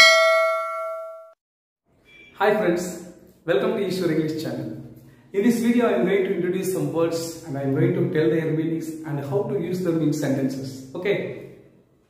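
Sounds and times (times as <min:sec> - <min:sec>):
notification bell ding: 0:00.0 - 0:01.4.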